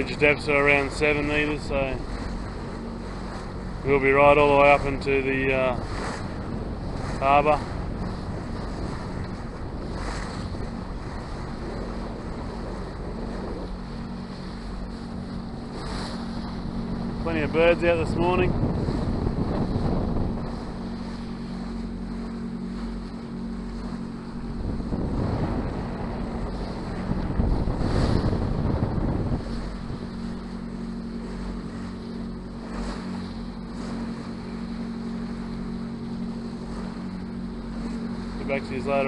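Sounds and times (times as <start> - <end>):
boat engine humming: 0.0 - 39.0
wind buffeting microphone: 0.0 - 39.0.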